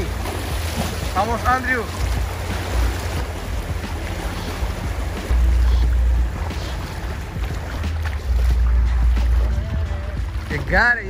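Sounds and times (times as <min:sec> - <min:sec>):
river water rushing over stones: 0:00.0 - 0:11.0.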